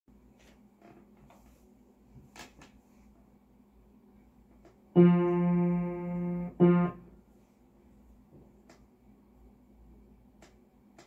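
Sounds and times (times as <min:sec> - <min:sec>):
piano note struck: 0:05.0 - 0:07.1.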